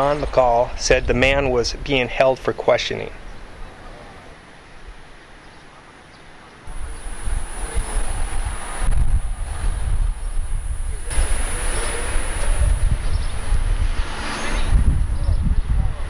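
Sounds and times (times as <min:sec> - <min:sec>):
low street rumble: 0:00.0 - 0:16.0.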